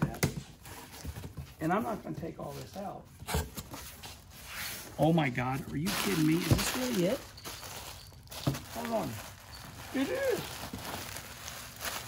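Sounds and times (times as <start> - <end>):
bubble wrap crinkling: 4.2 - 12.0.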